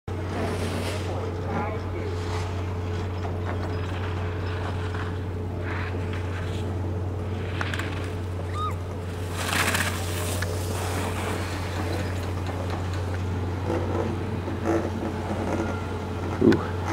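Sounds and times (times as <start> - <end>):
steady low hum: 0.1 - 16.9
ski edges scraping on snow: 0.3 - 1.2, 9.1 - 12.9.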